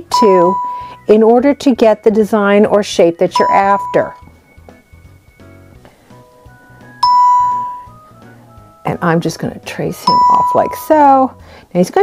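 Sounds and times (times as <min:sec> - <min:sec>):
electronic ding: 0:00.0 - 0:01.0, 0:03.4 - 0:04.2, 0:07.0 - 0:07.9, 0:10.1 - 0:10.9
faint tones: 0:07.0 - 0:08.0.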